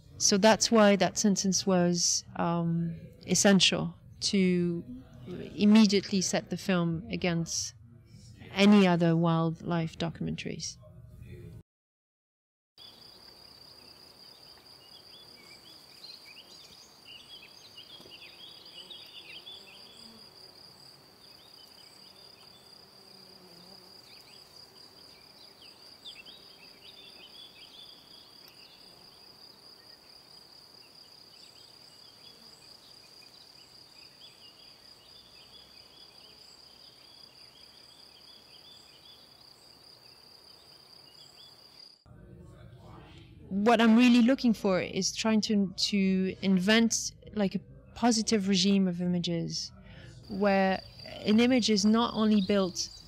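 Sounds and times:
insect trill: 12.8s - 42.0s, 50.2s - 53.0s
bees buzzing: 15.4s - 29.7s.

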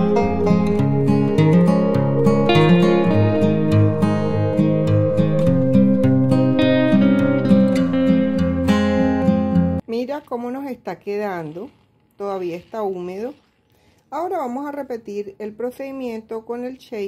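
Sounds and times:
acoustic guitar playing: 0.0s - 9.8s.

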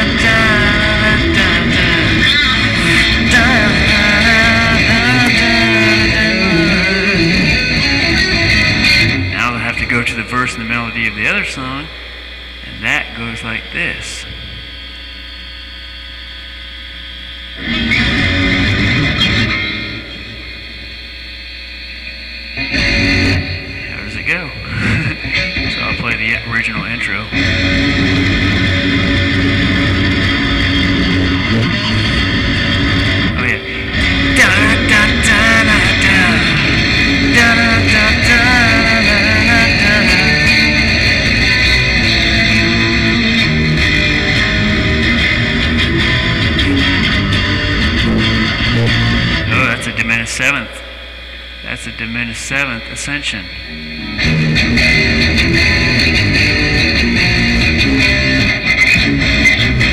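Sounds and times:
person singing: 0.0s - 8.1s, 31.1s - 42.9s
guitar playing: 0.0s - 14.9s, 17.6s - 21.2s, 22.0s - 59.9s.

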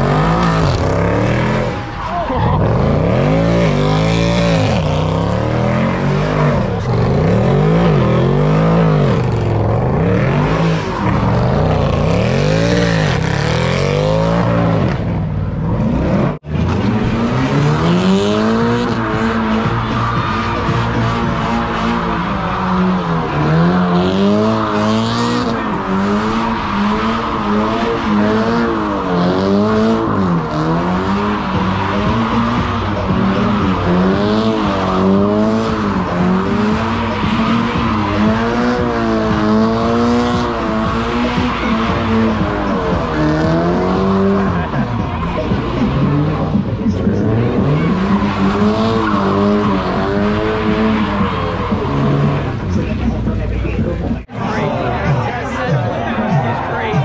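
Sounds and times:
car engine revving: 0.0s - 57.0s
tires squealing: 0.0s - 57.0s.

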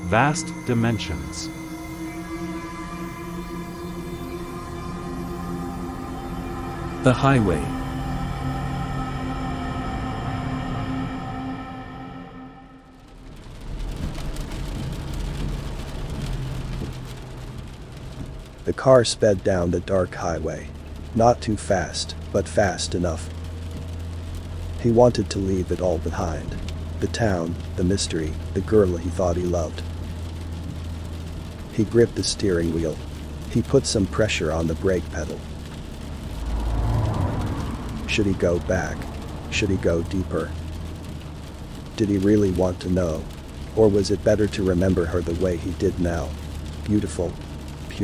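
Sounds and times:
car engine hum: 0.0s - 48.0s
road and rain hiss: 0.0s - 48.0s.

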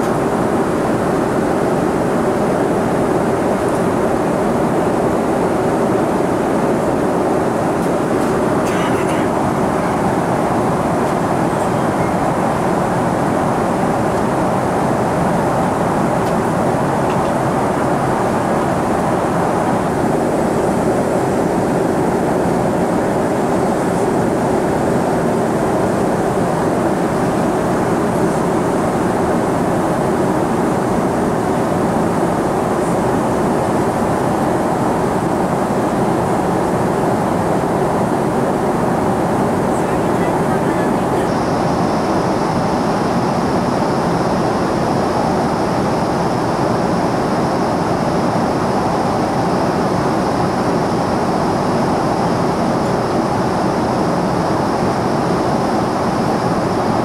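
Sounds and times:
airliner cabin engine rush: 0.0s - 57.0s.

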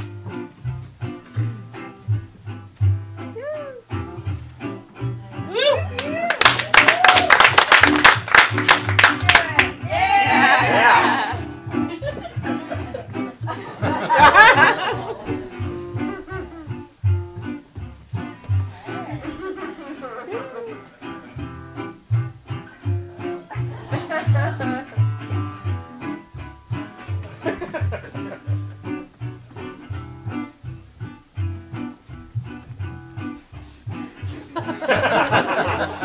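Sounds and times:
plucked string instrument melody: 0.0s - 36.0s.

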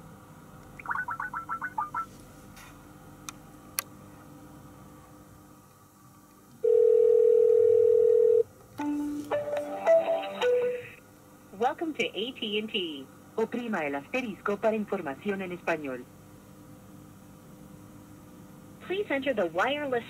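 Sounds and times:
phone ringback tone: 6.6s - 8.4s
changing phone tones: 6.6s - 10.8s.

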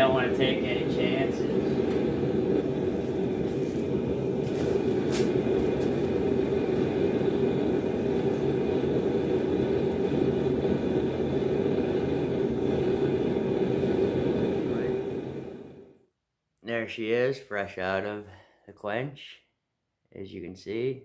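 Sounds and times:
gas burner rushing: 0.0s - 16.0s.

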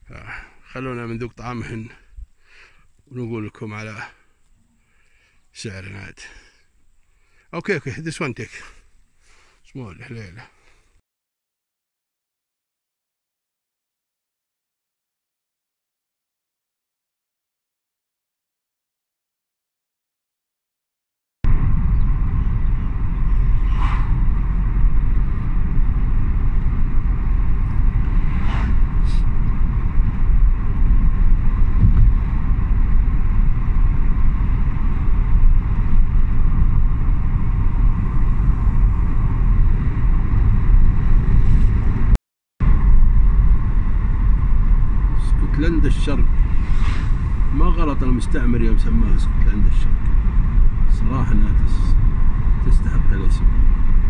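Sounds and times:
car engine and road noise: 21.5s - 54.0s.

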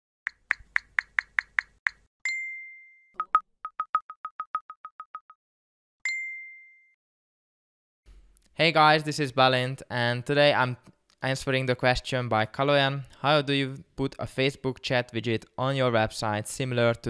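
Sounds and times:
notification ding: 2.3s - 5.2s, 6.1s - 7.0s.

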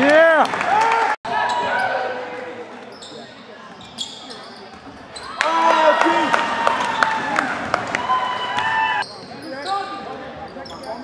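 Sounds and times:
voices in a hall: 0.0s - 11.0s
sneaker squeaks: 2.8s - 5.4s, 9.0s - 11.0s.

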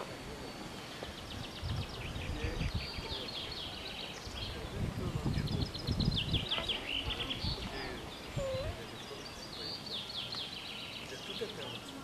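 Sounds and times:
outdoor background hiss: 0.0s - 12.0s
songbird trilling: 5.6s - 11.9s.

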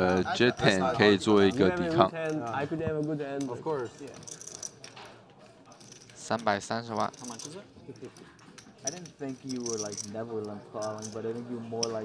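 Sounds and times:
man speaking: 0.0s - 4.3s, 6.2s - 7.6s, 8.8s - 12.0s.

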